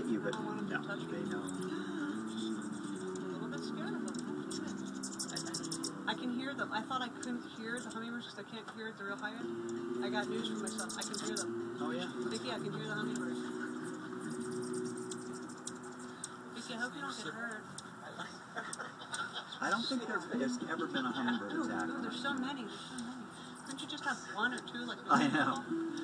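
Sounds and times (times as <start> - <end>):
background talking: 0.0 - 26.0
high ticking bird notes: 1.3 - 8.2, 9.2 - 17.9, 23.3 - 26.0
hummingbird wings buzzing: 1.3 - 8.2, 9.5 - 17.9.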